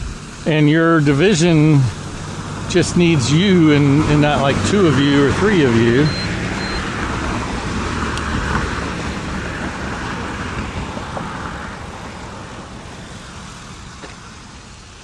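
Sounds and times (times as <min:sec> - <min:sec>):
vehicle passing: 0:01.0 - 0:15.0.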